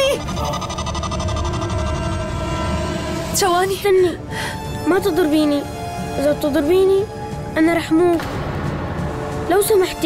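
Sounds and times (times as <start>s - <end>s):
suspenseful dramatic score: 0.0s - 10.0s.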